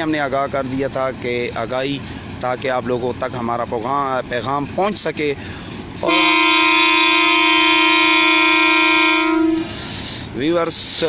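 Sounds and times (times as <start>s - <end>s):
locomotive horn blast: 6.0s - 10.1s.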